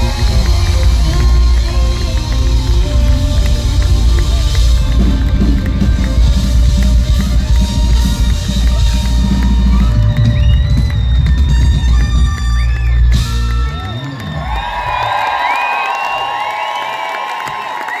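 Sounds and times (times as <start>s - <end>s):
live pop band playing: 0.0s - 14.9s
audience cheering and whistling: 0.0s - 18.0s.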